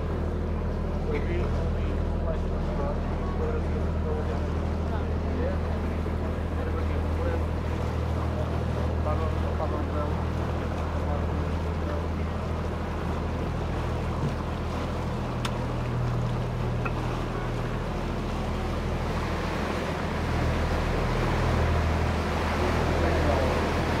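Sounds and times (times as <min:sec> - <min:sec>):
boat engine humming: 0:00.0 - 0:24.0
water wash: 0:00.0 - 0:24.0.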